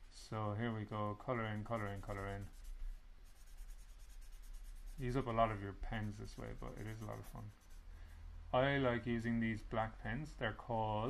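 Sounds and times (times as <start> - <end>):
pen scratching on paper: 1.4 - 7.8.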